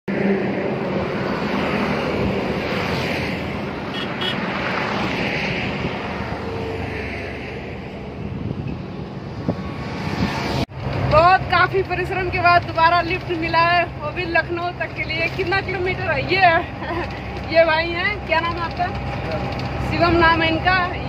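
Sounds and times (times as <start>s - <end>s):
highway traffic: 0.1s - 21.0s
trucks and motorbikes passing: 0.1s - 21.0s
wind on microphone: 0.5s - 10.6s.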